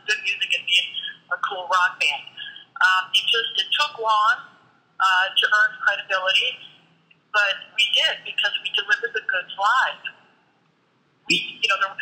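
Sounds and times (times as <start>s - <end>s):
woman talking on telephone-like audio: 0.0s - 6.8s, 7.4s - 10.3s, 11.3s - 12.0s.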